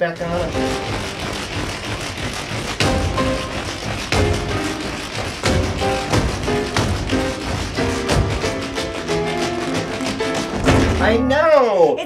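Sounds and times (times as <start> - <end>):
tap shoes on wooden floor: 0.0 - 11.0
music: 0.0 - 11.6.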